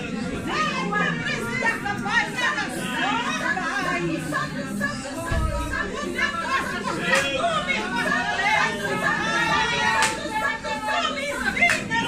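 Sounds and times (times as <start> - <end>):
congregation praying aloud: 0.0 - 12.0.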